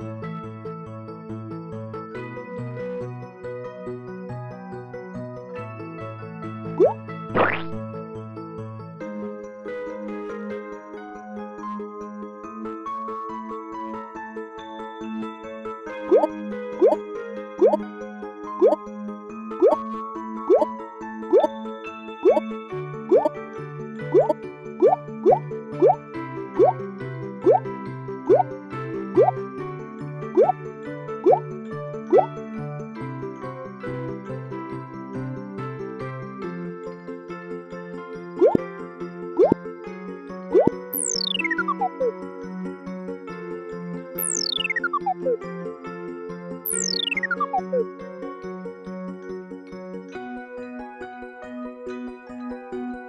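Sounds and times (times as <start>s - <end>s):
cheerful cartoon music: 4.2s - 11.0s, 11.6s - 53.0s
cartoon keyboard music: 6.8s - 7.8s, 16.0s - 17.8s, 18.6s - 18.8s, 19.6s - 19.9s, 20.5s - 21.6s, 22.2s - 22.5s, 23.1s - 23.4s, 24.1s - 26.0s, 26.6s - 26.8s, 27.4s - 27.7s, 28.3s - 28.5s, 29.1s - 29.4s, 30.3s - 30.6s, 31.2s - 32.4s, 38.4s - 38.6s, 40.5s - 42.1s, 44.2s - 45.4s, 46.6s - 47.9s
upward-sliding plop effect: 6.8s - 7.8s, 16.1s - 17.0s, 22.2s - 22.4s, 23.1s - 23.3s, 24.2s - 26.0s, 27.4s - 27.6s, 29.2s - 29.4s, 40.6s - 42.1s, 44.2s - 45.4s, 46.7s - 47.8s.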